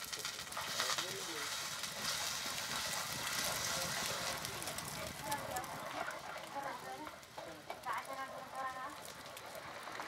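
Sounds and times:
batter sizzling on hot griddle: 0.0s - 10.0s.

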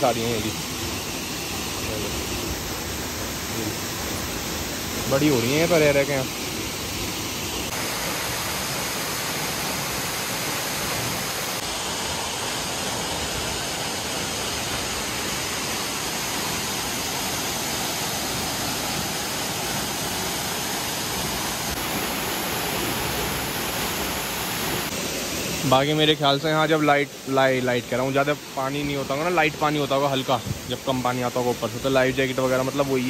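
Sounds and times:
waterfall rushing into pool: 0.0s - 33.0s
water running over stones: 3.0s - 6.3s.

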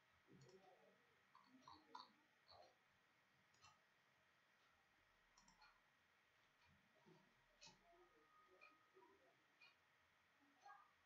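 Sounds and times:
faint clicks: 3.5s - 3.8s, 5.4s - 5.8s.

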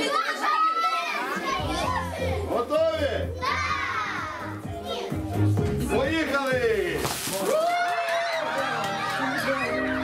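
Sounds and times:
excited children's voices: 0.0s - 2.6s, 3.3s - 5.3s
background music: 1.4s - 10.0s.

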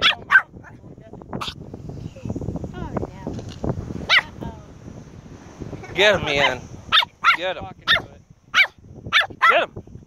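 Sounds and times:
small dog barking high: 0.0s - 0.8s, 4.1s - 4.3s, 6.4s - 9.6s.

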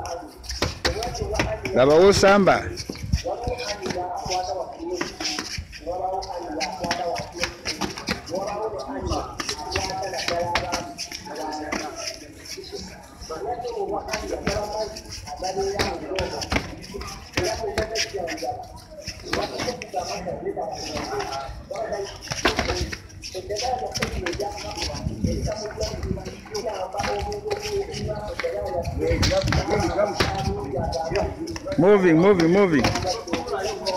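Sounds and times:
people talking and calling out: 0.0s - 33.9s.

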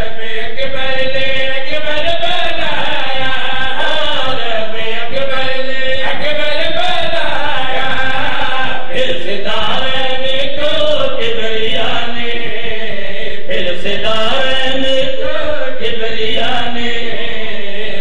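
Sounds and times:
man chanting into a microphone: 0.0s - 18.0s.

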